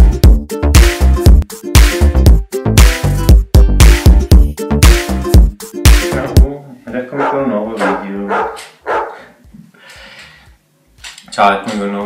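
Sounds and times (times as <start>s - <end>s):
small dog barking: 7.2s - 9.3s.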